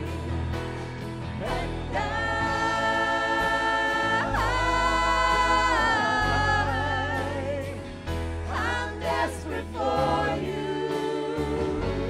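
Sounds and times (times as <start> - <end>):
women singing worship song: 0.0 - 0.6, 1.2 - 12.0.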